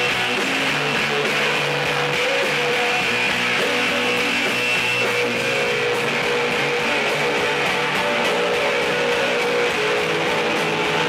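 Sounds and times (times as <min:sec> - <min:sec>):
bass line: 0:00.0 - 0:11.0
rock band playing live: 0:00.0 - 0:11.0
strummed electric guitar: 0:00.0 - 0:11.0.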